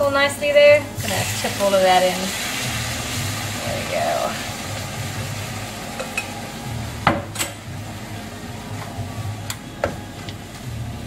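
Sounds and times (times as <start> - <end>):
food sizzling in a frying pan: 0.1 - 8.7.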